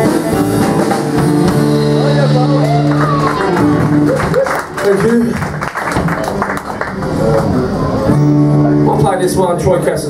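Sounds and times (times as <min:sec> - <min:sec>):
country band guitars playing: 0:00.0 - 0:10.0.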